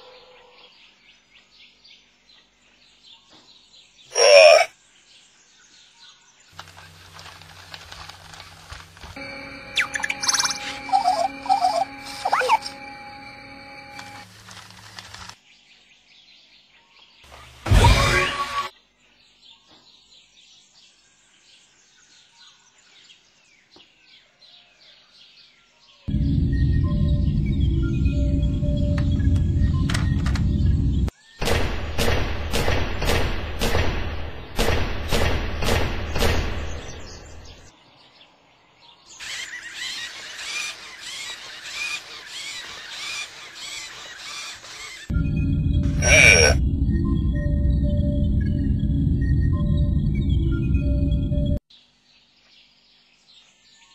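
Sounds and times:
small birds chirping: 0.0 - 14.2, 18.7 - 31.4, 36.1 - 48.4
low pulsing hum: 6.7 - 14.2, 26.1 - 31.1, 45.1 - 51.6
high squeaky electronic chirps: 9.2 - 14.2
loud deep sound effect: 26.1 - 34.0, 45.1 - 51.6.

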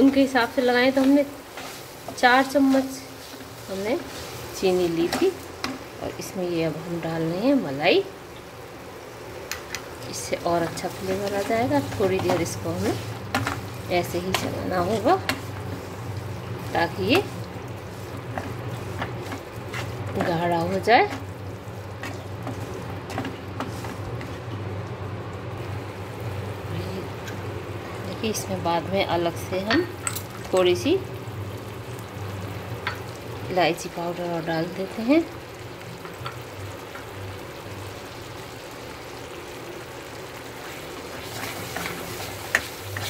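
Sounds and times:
wooden spatula scraping a pan: 0.0 - 5.8, 10.6 - 21.3, 22.0 - 24.4.

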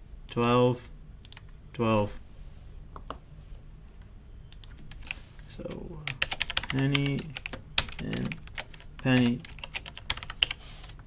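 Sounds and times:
low steady hum: 0.0 - 11.0
computer keyboard keys clicking: 4.5 - 11.0.

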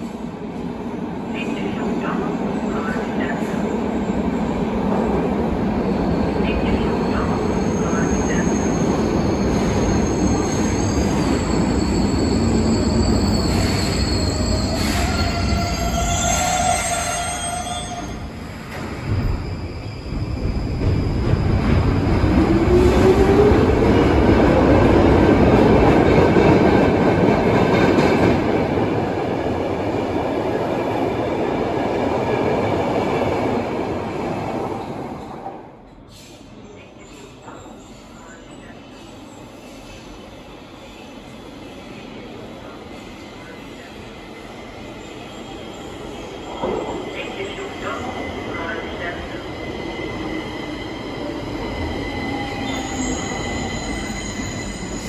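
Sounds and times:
metro train rumbling: 0.0 - 55.0
wheel and brake squeal: 10.0 - 18.2.

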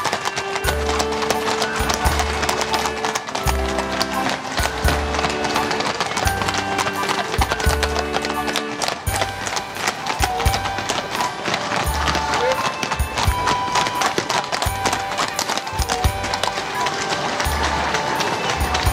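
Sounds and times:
horses hooves clip-clopping on tarmac: 0.0 - 18.9.

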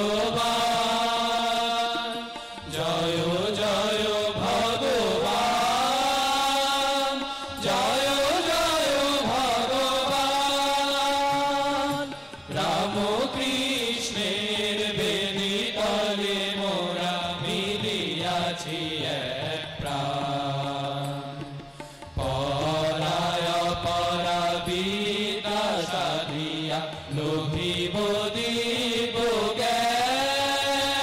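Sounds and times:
harmonium: 0.0 - 31.0
men singing together: 0.0 - 31.0
tabla: 0.0 - 31.0.

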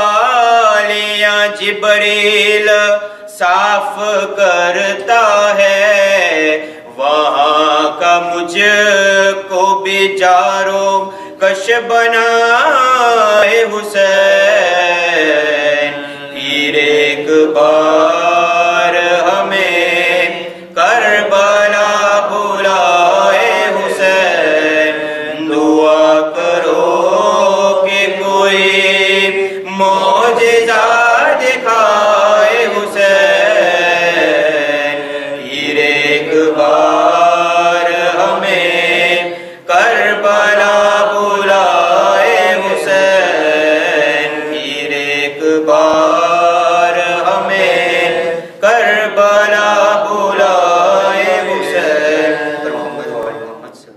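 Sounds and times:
man chanting: 0.0 - 53.9.

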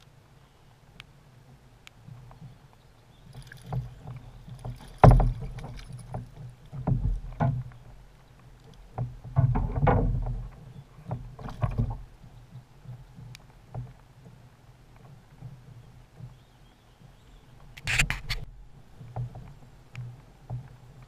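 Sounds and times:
fish splashing and thrashing: 3.3 - 7.5
knocks against kayak hull: 4.8 - 6.0.

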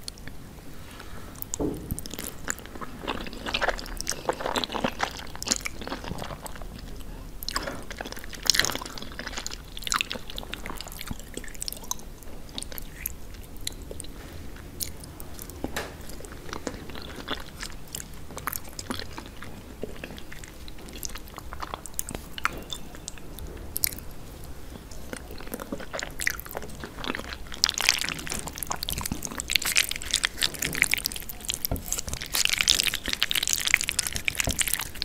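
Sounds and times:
wet chewing of noodles: 0.0 - 35.0.

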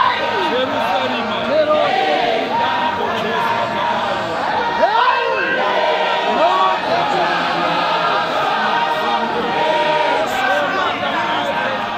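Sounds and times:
congregation singing: 0.0 - 11.9.

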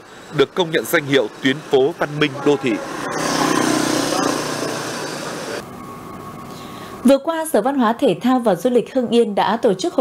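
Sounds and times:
cars passing: 0.0 - 7.0
motorbike passing: 0.3 - 6.4.

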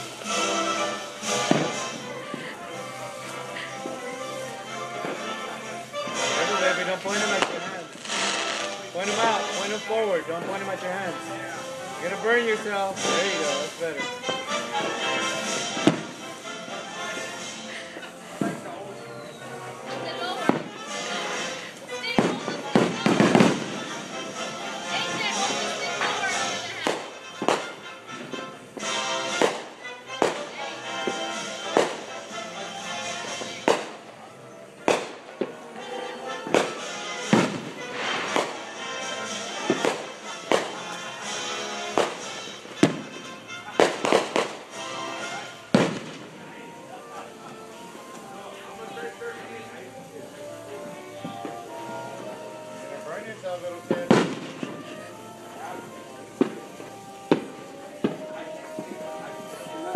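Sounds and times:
background music: 0.0 - 59.9
firecrackers banging and popping: 0.0 - 59.9
voices: 0.0 - 59.9.

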